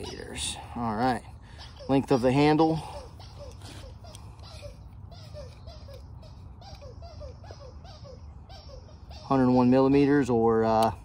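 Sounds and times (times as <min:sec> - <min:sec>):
distant animal chirping: 0:00.0 - 0:10.9.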